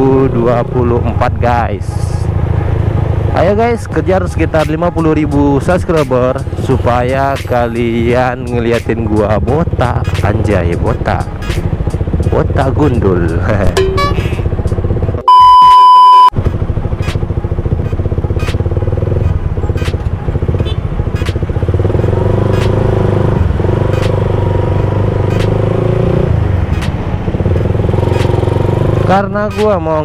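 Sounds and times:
motorcycle engine at low speed: 0.0 - 15.2, 16.3 - 30.0
electronic test-tone beep: 13.8 - 14.4, 15.2 - 16.4.

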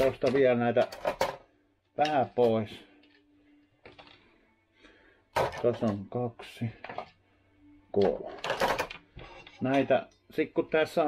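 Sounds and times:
cables rustling and clicking: 2.0 - 4.4.

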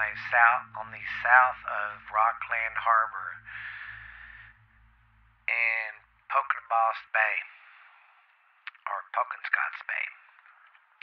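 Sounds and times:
man voicing held syllable: 0.0 - 3.5
faint low hum: 0.0 - 11.0
man breathing: 3.4 - 5.4.

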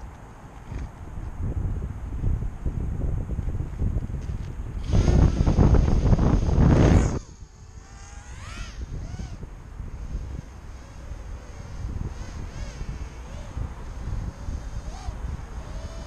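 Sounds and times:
drone motors whining: 4.7 - 16.0.

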